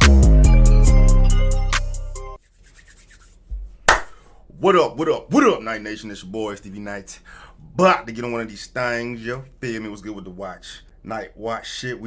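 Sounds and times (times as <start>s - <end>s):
intro music: 0.0s - 2.4s
hands rubbing together: 2.4s - 4.3s
hand clap: 3.2s - 4.2s.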